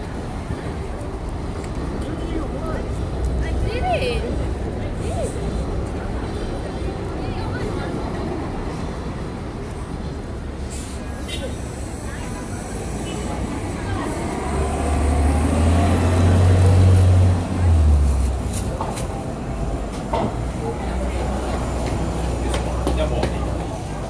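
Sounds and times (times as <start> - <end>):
busy city street noise: 0.0 - 24.0
heavy vehicle rumbling past: 10.5 - 24.0.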